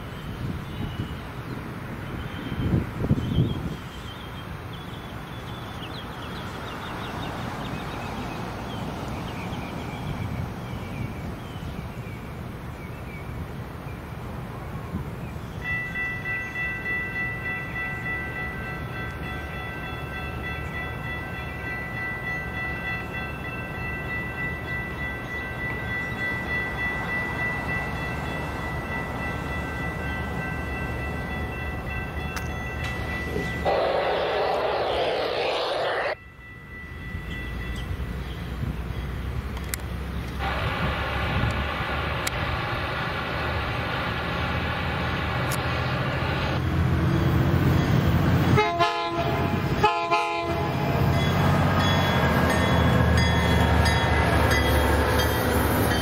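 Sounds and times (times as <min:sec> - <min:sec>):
crossing warning bell ringing: 0:15.6 - 0:34.1, 0:36.2 - 0:41.5, 0:47.1 - 0:56.0
locomotive horn blast: 0:48.5 - 0:51.0
locomotive air horn chord: 0:48.6 - 0:50.9.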